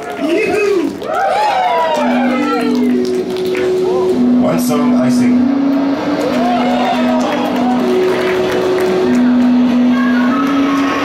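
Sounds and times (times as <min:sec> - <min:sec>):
synthesizer held notes: 0:01.6 - 0:11.0.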